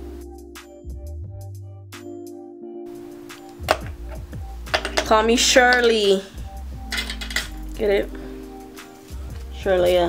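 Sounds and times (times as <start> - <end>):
background music: 0.0 - 10.0
hair rollers and clips set down: 3.5 - 6.1, 6.9 - 7.6.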